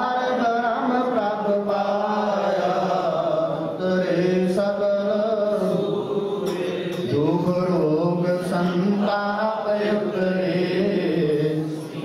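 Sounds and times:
man singing a hymn: 0.0s - 6.0s, 6.7s - 12.0s.

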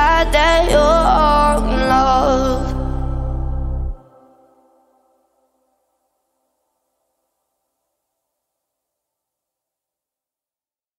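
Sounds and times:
bass: 0.0s - 4.0s
sustained synth chords: 0.0s - 5.0s.

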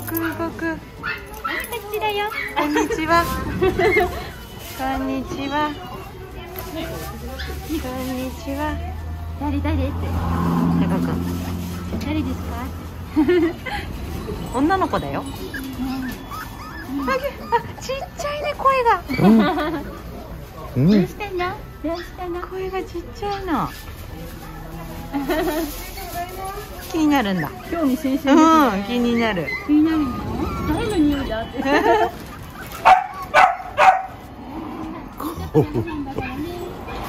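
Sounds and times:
dog whimpering and whining: 14.4s - 19.7s, 27.1s - 33.3s
dog barking: 32.8s - 34.2s.

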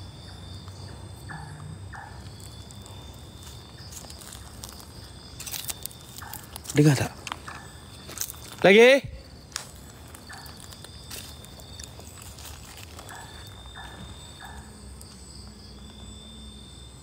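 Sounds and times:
night insects chirring: 0.0s - 17.0s.

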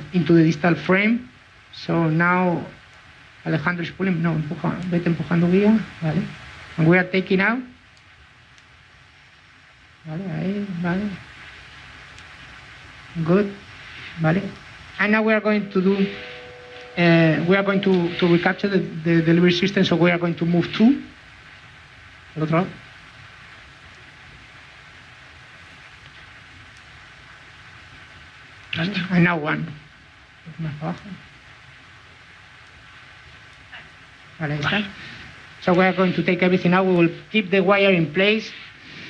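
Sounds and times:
low hum and hiss: 0.0s - 39.0s
faint thin steady tone: 13.2s - 21.1s.

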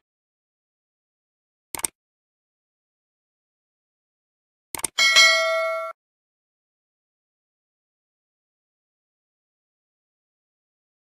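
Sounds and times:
short clicks: 1.8s - 2.0s, 4.8s - 5.0s
bright bell ding: 5.0s - 6.0s.

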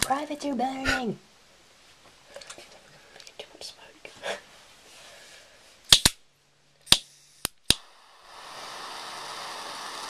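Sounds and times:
lighter igniter clicking: 5.9s - 6.2s, 6.9s - 7.9s.

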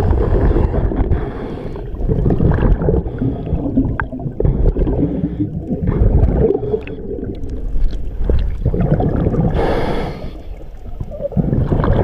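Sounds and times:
underwater bubbles gurgling: 0.0s - 12.0s.

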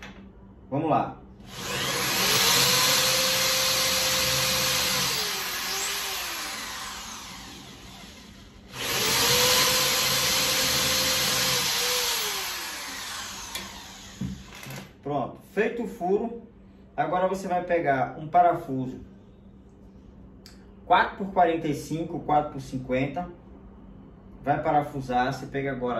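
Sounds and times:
electric drill motor whine: 1.4s - 14.9s.

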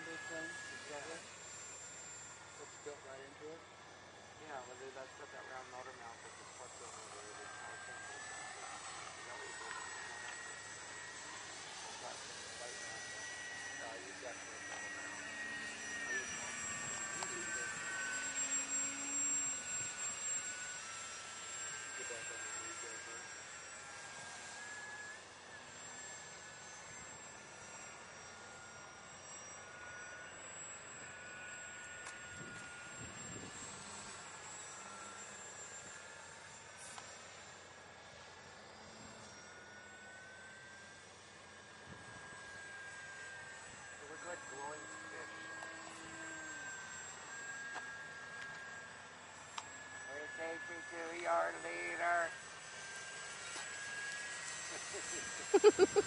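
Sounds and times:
model airplane motors whining: 0.0s - 56.0s.

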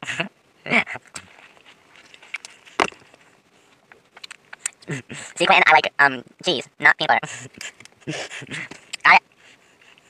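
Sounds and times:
mouth clicks: 0.9s - 1.4s, 3.9s - 5.6s
person laughing: 4.8s - 5.5s, 7.2s - 9.0s.

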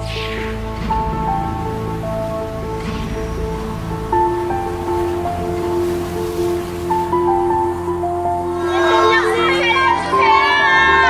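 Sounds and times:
slow instrumental music: 0.0s - 11.0s
soft wash of noise: 0.0s - 11.0s.

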